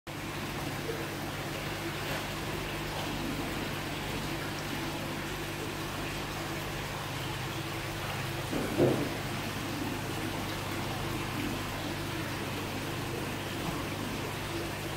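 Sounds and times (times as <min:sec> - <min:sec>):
low mechanical hum: 0:00.1 - 0:14.9
rushing water: 0:00.1 - 0:14.9.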